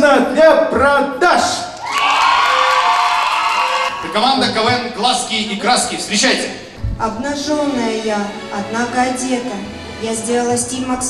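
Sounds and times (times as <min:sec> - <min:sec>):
audience cheering and applauding: 0:01.7 - 0:04.9.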